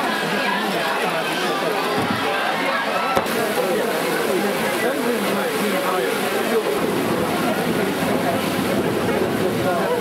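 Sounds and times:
heavy rain pouring: 0:00.0 - 0:10.0
people's voices: 0:00.0 - 0:10.0.

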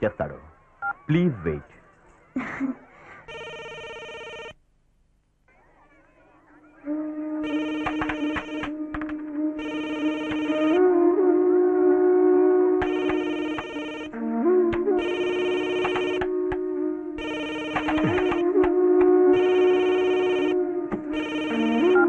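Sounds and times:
phone ringtone melody: 0:03.3 - 0:04.5, 0:07.4 - 0:08.8, 0:09.6 - 0:10.8, 0:12.8 - 0:14.2, 0:15.0 - 0:16.3, 0:17.2 - 0:18.7, 0:19.4 - 0:22.0.

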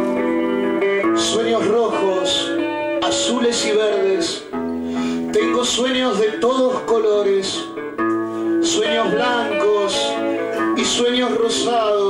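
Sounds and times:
guitar: 0:00.0 - 0:12.0
man singing into microphone: 0:00.7 - 0:04.5, 0:05.3 - 0:07.7, 0:08.6 - 0:12.0.

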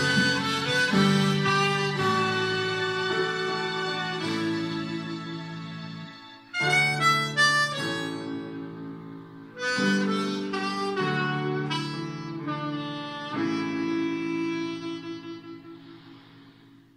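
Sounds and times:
backing track of sustained chords: 0:00.0 - 0:12.4
harmonica playing a melody: 0:00.0 - 0:16.6.

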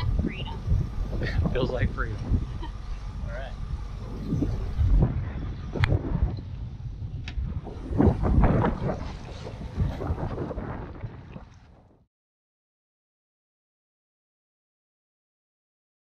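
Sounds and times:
water rushing along hull: 0:00.0 - 0:12.0
wind buffeting microphone: 0:00.0 - 0:12.1.

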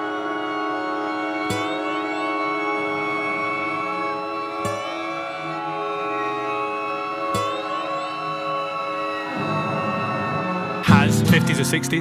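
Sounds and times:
string trio sustained chord: 0:00.0 - 0:12.0
upward pitch slide: 0:09.1 - 0:12.0.

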